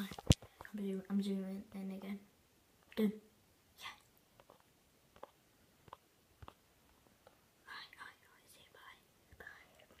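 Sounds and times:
faint whispering: 0:03.8 - 0:04.1, 0:07.6 - 0:10.0.

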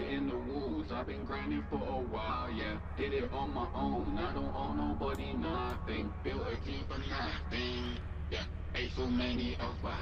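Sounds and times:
processed rapping vocal: 0:00.0 - 0:10.0
steady low drone: 0:00.0 - 0:10.0.

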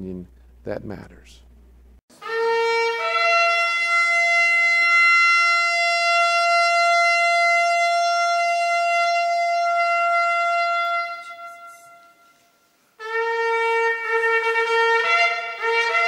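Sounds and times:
shofar blast: 0:02.2 - 0:16.0.

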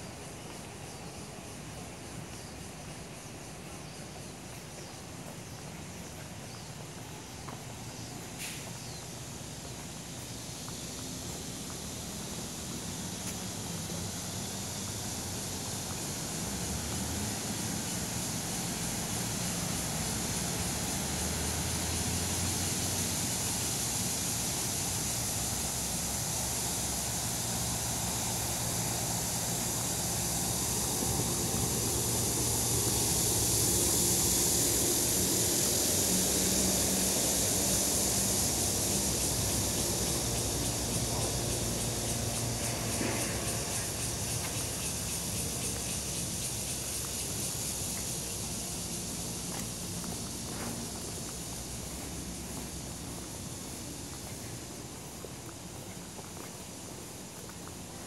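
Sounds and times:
high even hiss: 0:00.0 - 0:58.0.

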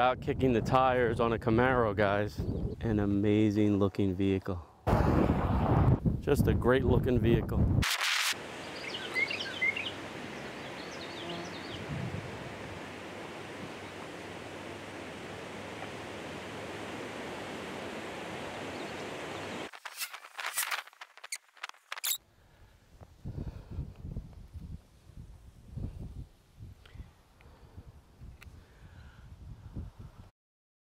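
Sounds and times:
wind hiss: 0:07.8 - 0:22.2
bird chirps: 0:08.6 - 0:11.8.

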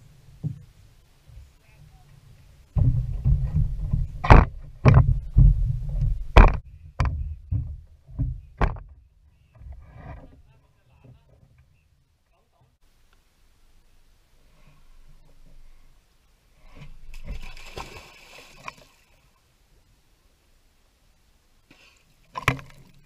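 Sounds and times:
bare footsteps on wooden planks: 0:02.7 - 0:09.0.

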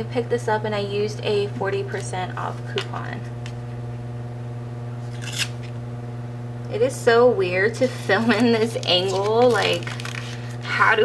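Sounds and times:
low electrical hum: 0:00.0 - 0:11.0
paper rustle: 0:08.2 - 0:10.5.

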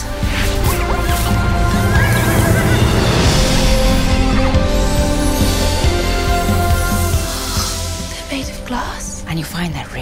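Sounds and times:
film music: 0:00.0 - 0:10.0.

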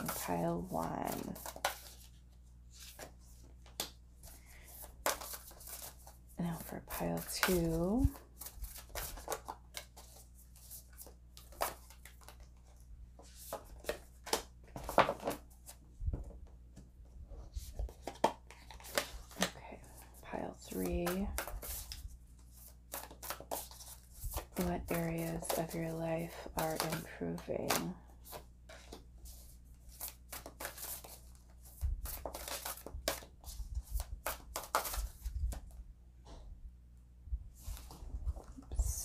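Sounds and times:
cards being shuffled: 0:00.0 - 0:15.7, 0:17.6 - 0:35.7.

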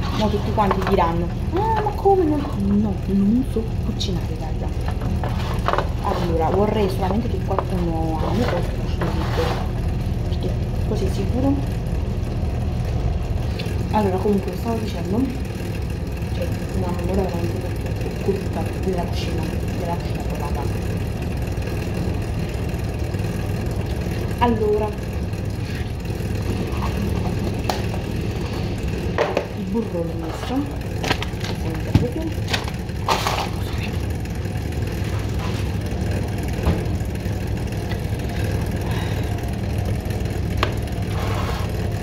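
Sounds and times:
extractor fan humming: 0:00.0 - 0:42.0
low mechanical rumble: 0:00.0 - 0:42.0.

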